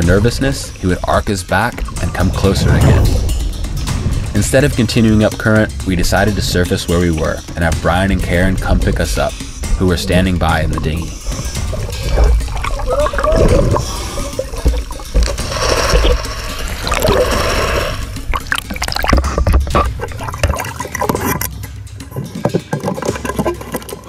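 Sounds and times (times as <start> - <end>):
water rushing and bubbling: 0.0 - 21.6, 22.6 - 24.0
deep underwater rumble: 1.1 - 20.7
water splashes: 10.4 - 21.5, 22.6 - 24.0.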